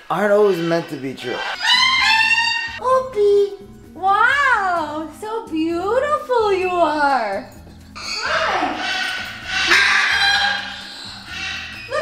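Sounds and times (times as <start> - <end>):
macaw screeching: 0.1 - 2.8, 8.0 - 12.0.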